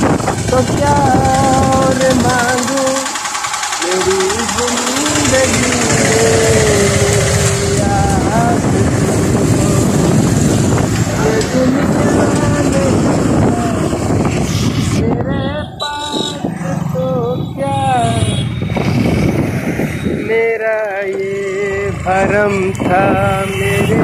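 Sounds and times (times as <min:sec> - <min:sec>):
wind rushing over microphone: 0:00.0 - 0:02.8, 0:04.4 - 0:24.0
motorcycle engine running: 0:00.0 - 0:24.0
person humming a wavering tune: 0:03.8 - 0:10.2.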